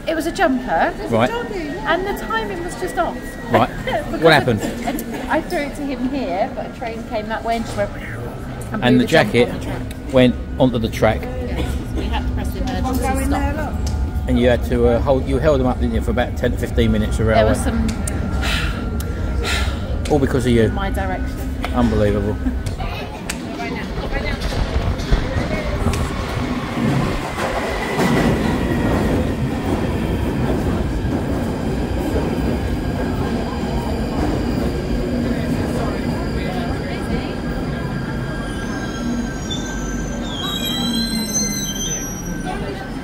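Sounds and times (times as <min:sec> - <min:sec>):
underground train rumbling: 0:00.0 - 0:43.0
high bending brake squeal: 0:35.9 - 0:43.0.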